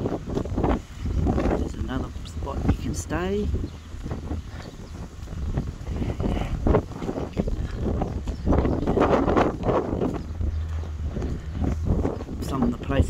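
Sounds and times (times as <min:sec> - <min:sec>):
footsteps on gravel: 0:00.0 - 0:13.0
wind buffeting microphone: 0:00.0 - 0:13.0.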